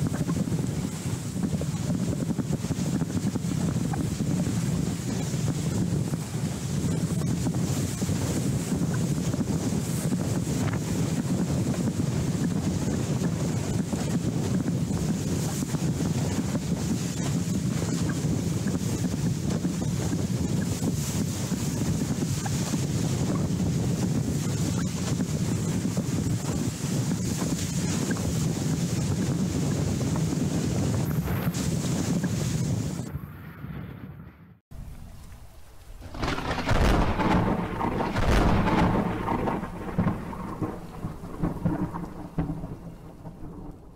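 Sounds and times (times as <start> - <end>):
wind buffeting microphone: 0.0 - 43.9.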